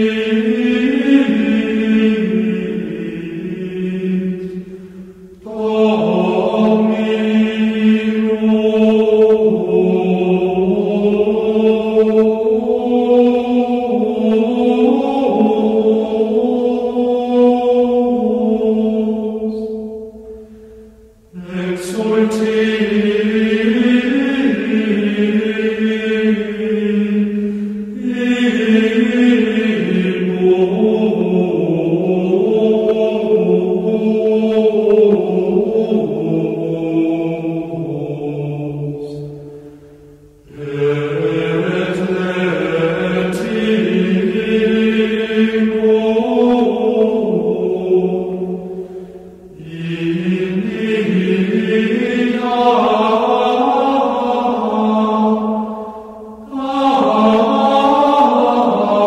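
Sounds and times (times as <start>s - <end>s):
slow devotional chant: 0.0s - 59.0s.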